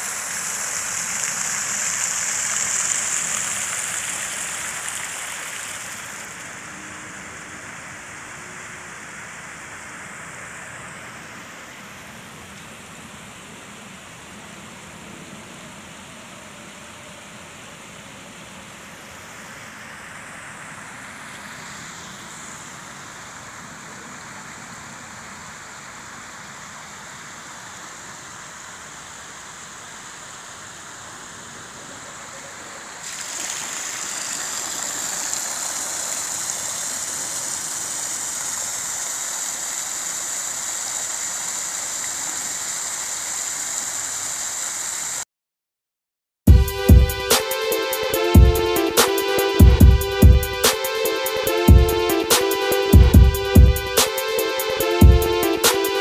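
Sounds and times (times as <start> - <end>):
fountain splashing into pool: 0.0 - 45.2.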